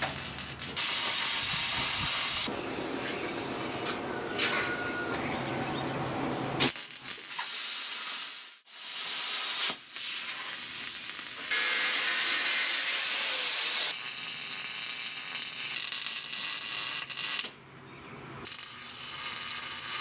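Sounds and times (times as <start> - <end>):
angle grinder cutting steel: 11.4 - 16.4.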